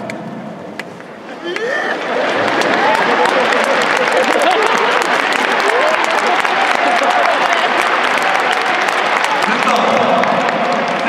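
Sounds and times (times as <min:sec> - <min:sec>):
crowd voices: 0:00.0 - 0:11.0
crowd applauding: 0:00.8 - 0:11.0.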